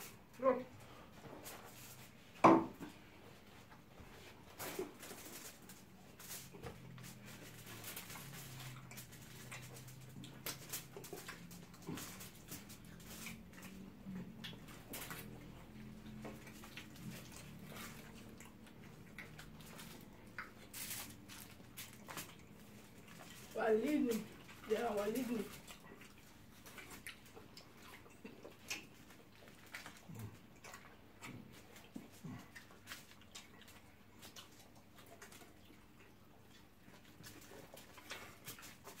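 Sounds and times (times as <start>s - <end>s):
fingers crinkling foil: 4.6s - 13.9s, 19.3s - 27.3s
chewing and lip smacks: 4.6s - 39.0s.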